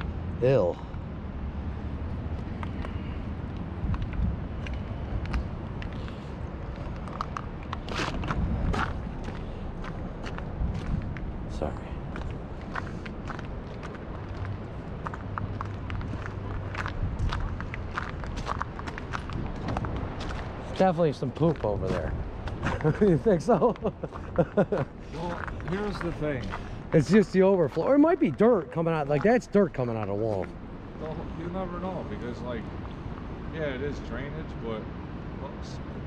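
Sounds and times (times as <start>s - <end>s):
footsteps on gravel: 6.0s - 11.2s, 12.1s - 23.0s, 24.0s - 28.5s.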